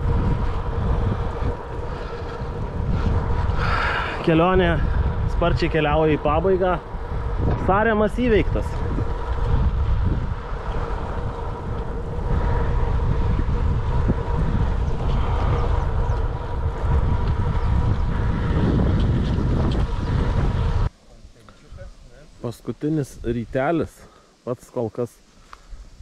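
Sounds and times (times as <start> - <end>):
wind buffeting microphone: 0.0 - 22.1.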